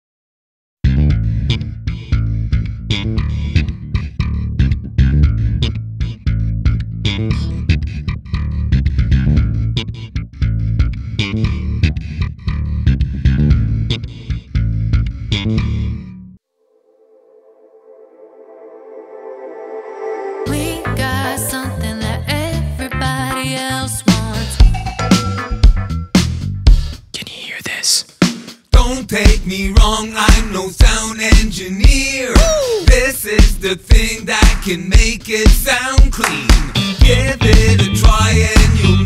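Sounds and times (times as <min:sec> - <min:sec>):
funky electric bass line: 0:00.8 - 0:16.4, 0:20.5 - 0:27.0, 0:28.8 - 0:39.0.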